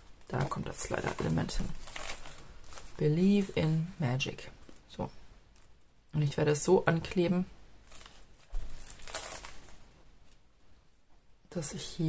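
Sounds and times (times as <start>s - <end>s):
paper rustling: 0.1s - 3.6s, 7.8s - 10.4s.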